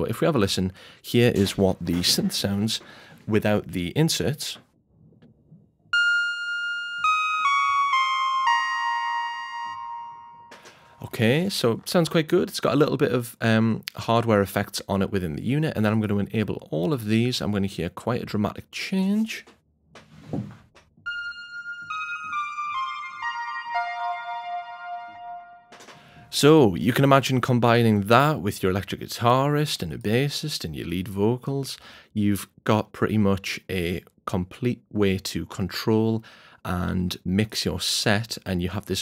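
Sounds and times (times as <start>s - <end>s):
synthesizer descending notes: 6.0s - 10.6s, 21.1s - 25.8s.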